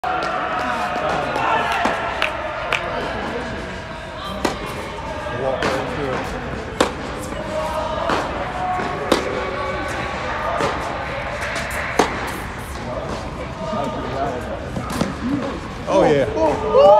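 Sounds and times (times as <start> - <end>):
murmur of voices: 0.0 - 16.9
racket striking tennis ball: 4.4 - 4.8, 5.6 - 9.5, 10.1 - 13.3
tennis ball bouncing: 4.4 - 4.8, 5.6 - 9.6, 10.5 - 13.2.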